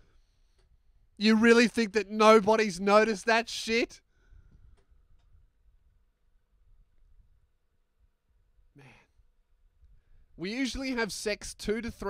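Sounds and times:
man sighing: 8.8 - 9.1.

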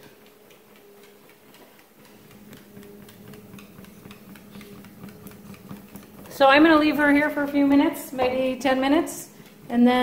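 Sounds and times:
treadmill motor hum: 0.0 - 10.0
dog steps ticking on belt: 0.1 - 9.8.

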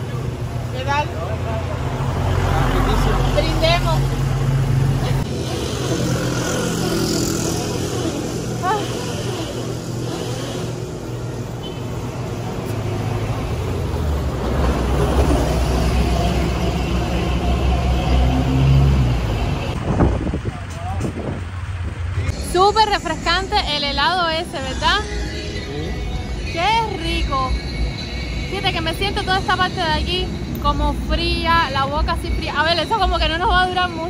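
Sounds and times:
vehicle engine rumbling: 0.0 - 34.0.

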